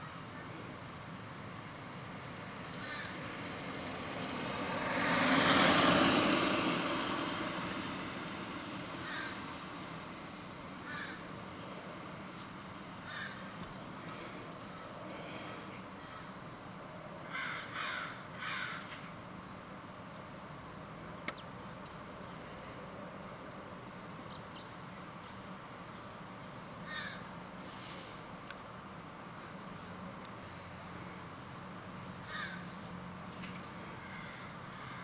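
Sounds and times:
vehicle passing: 1.8s - 16.1s.

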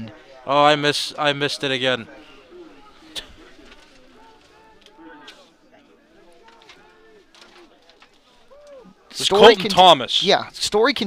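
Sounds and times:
distant overlapping voices: 0.0s - 11.0s.

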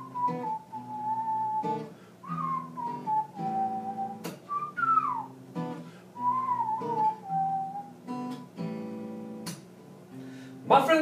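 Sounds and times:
man whistling a melody: 0.0s - 8.3s
strummed acoustic guitar: 0.0s - 11.0s.

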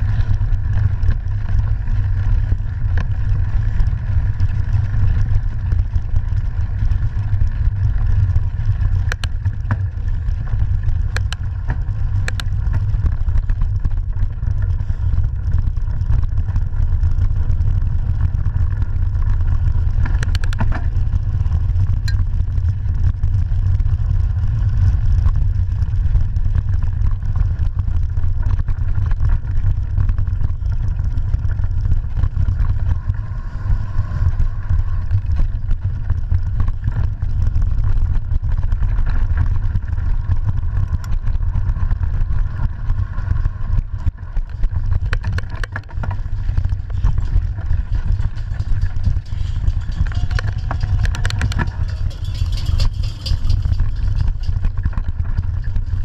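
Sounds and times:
bike clattering over bumps: 0.0s - 56.0s
wind rumble on microphone: 0.0s - 56.0s.

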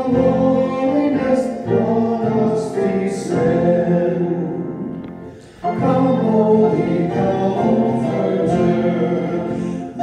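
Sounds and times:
acoustic guitar: 0.0s - 10.0s
people singing a hymn: 0.0s - 10.0s.

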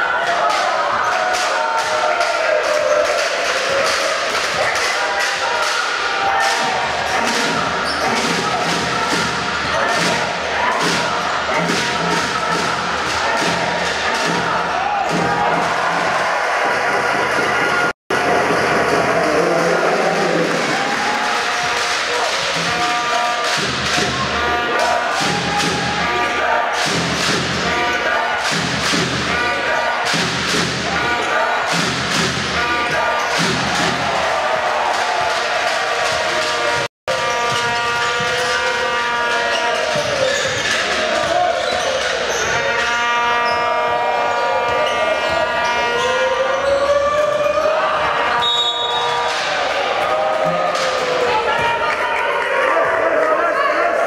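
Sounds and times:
music: 0.0s - 52.1s
voices in an arena: 0.0s - 54.0s.

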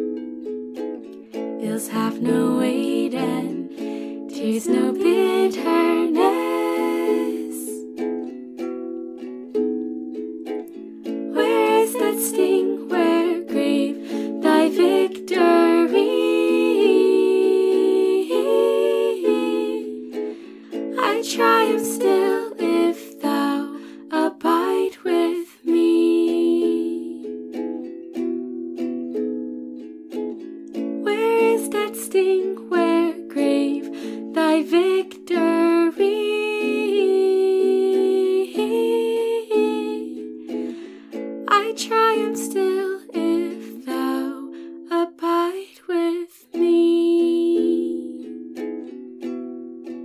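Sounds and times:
instrumental accompaniment: 0.0s - 35.8s
slow hymn singing: 1.6s - 7.8s, 11.3s - 27.2s.

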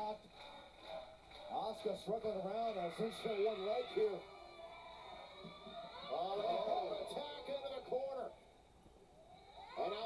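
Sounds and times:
loud commentary: 1.5s - 4.4s.

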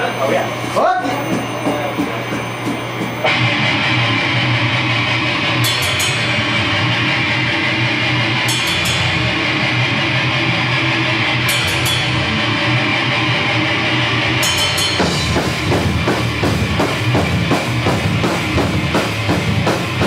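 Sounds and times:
band playing loud metal: 0.0s - 20.0s
cymbal crashes: 3.2s - 20.0s.

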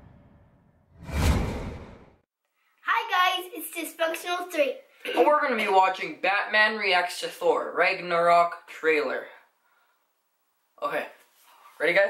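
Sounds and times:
sound effect whoosh: 0.0s - 2.2s.

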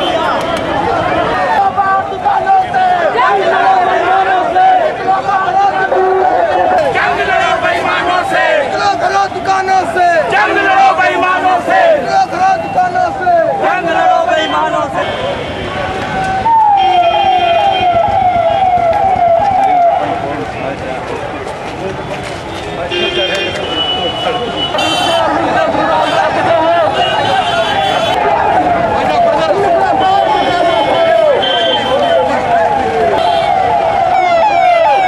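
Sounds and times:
siren yelping: 16.1s - 20.3s, 27.4s - 35.0s.

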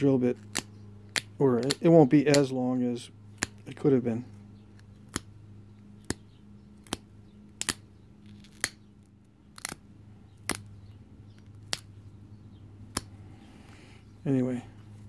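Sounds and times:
sharp clicks of stone flaking: 0.4s - 2.6s, 6.8s - 9.8s, 10.4s - 10.7s, 11.4s - 11.9s, 12.9s - 13.2s.

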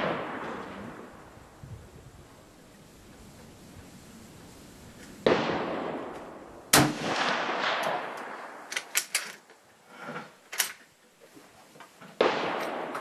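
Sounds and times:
rifle shots echoing: 0.0s - 1.2s, 5.2s - 9.1s, 12.2s - 13.0s
rifle bolt metallic clicks: 7.8s - 9.5s, 10.5s - 10.8s.

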